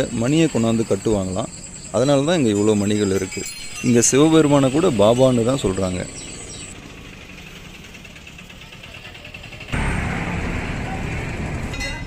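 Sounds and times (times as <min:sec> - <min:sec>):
street noise with vehicles: 0:00.0 - 0:12.0.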